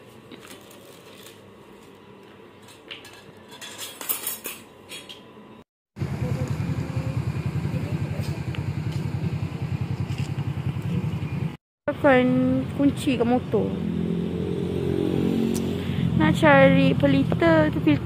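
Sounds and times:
dishes and cutlery clinking: 2.7 - 5.3
low pulsing hum: 6.0 - 14.0.

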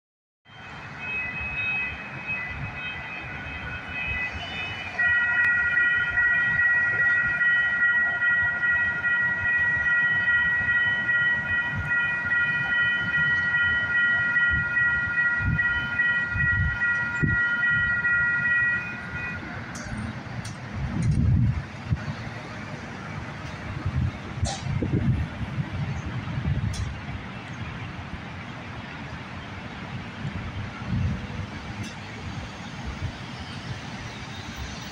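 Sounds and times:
railroad crossing bells ringing: 0.5 - 34.9
train rumbling: 0.6 - 34.9.

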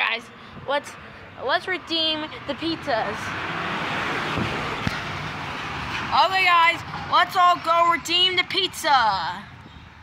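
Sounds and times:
road traffic rush: 0.0 - 10.0.

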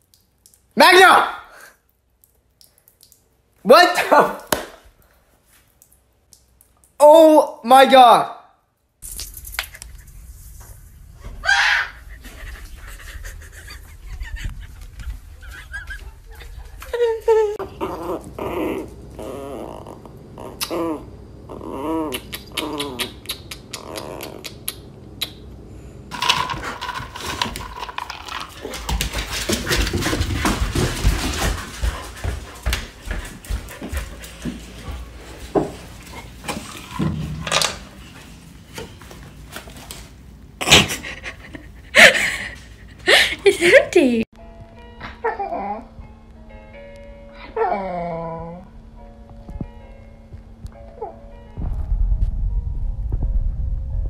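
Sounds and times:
woman laughing loudly: 12.1 - 17.6, 40.7 - 44.2
small dog growling: 17.6 - 24.7
dog panting: 26.2 - 37.0.

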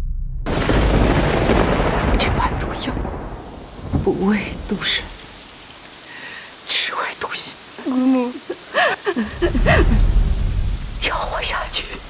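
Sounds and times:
thunder rumbling: 0.0 - 5.8, 9.2 - 12.0
rain hissing: 0.5 - 12.0.

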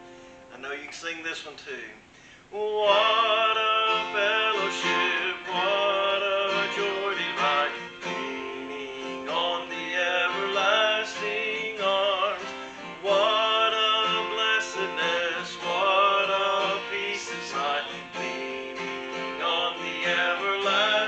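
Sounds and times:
acoustic guitar strumming: 0.0 - 1.0, 2.6 - 21.0
man singing: 2.5 - 21.0.

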